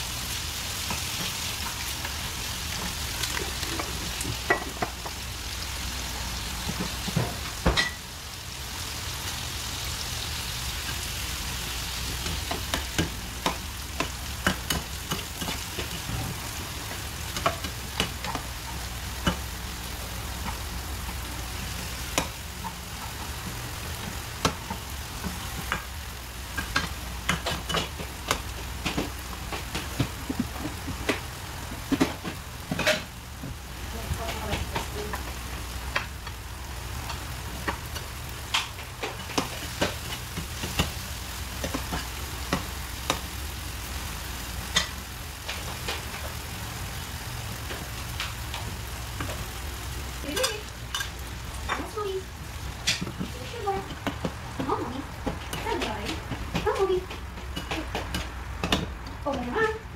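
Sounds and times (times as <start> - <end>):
vegetables sizzling in hot oil: 0.0 - 59.9
utensil scraping frying pan: 50.2 - 51.8.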